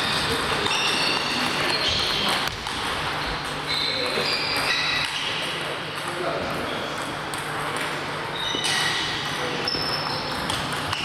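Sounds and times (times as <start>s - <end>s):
table tennis balls pinging: 0.0s - 11.0s.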